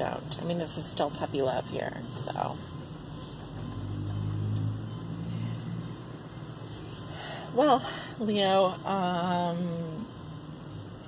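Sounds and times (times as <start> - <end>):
passing vehicle engine hum: 3.3 - 6.6.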